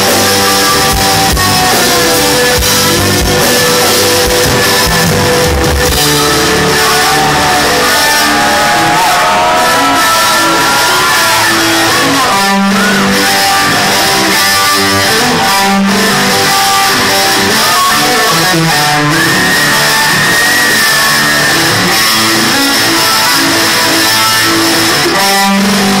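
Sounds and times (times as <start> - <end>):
bass guitar: 0.0 - 26.0
drums: 0.0 - 26.0
lead electric guitar melody: 0.0 - 26.0.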